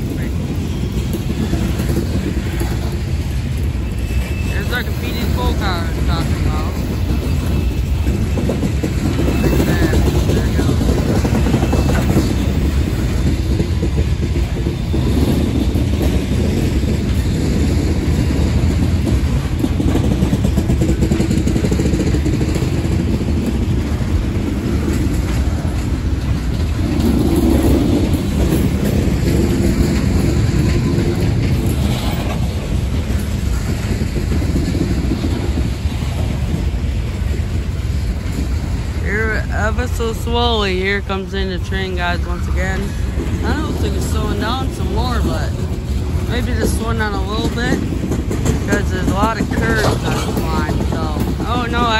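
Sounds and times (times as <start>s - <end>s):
freight train wheels rumbling on rail: 0.0s - 51.9s.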